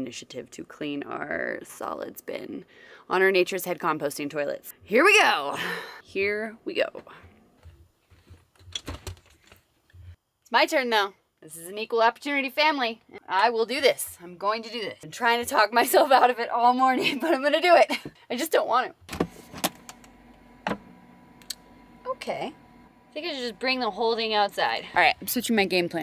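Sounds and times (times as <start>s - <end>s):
faint steady hum: 19.1s - 25.3s.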